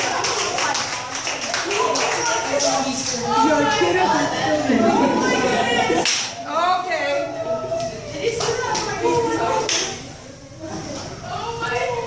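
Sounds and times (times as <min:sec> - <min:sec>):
excited high-pitched voices: 0:00.0 - 0:12.0.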